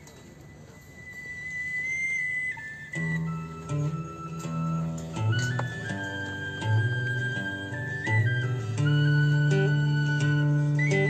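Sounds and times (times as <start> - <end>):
low sustained instrument notes: 0.0 - 11.0
high whistle-like held note: 0.1 - 11.0.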